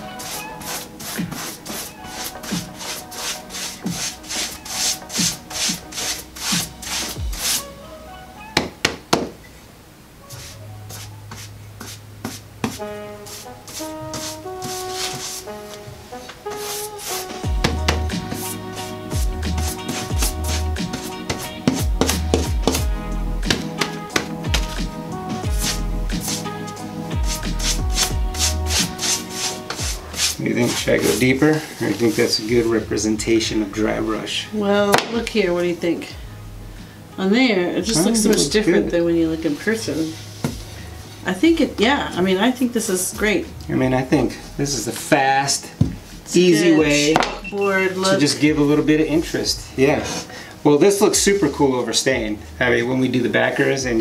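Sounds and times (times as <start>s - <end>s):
paintbrush scratchy strokes: 0.0s - 7.8s, 10.2s - 22.8s, 25.2s - 32.7s, 39.4s - 41.2s
background music: 0.0s - 54.0s
deep sliding bass notes: 17.4s - 20.9s, 21.8s - 35.6s, 36.2s - 37.0s, 37.8s - 42.3s.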